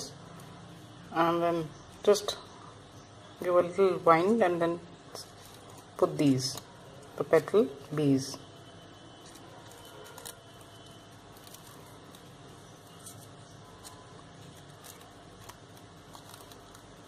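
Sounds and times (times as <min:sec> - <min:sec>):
crepe paper rustling: 0:09.2 - 0:17.0.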